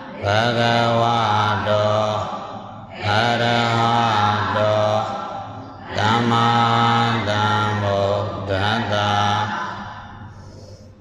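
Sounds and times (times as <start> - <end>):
man chanting: 0.1 - 10.2.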